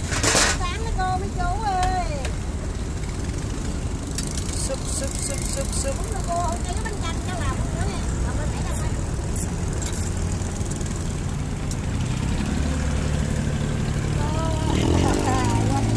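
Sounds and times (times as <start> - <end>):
boat engine idling: 0.0 - 15.9.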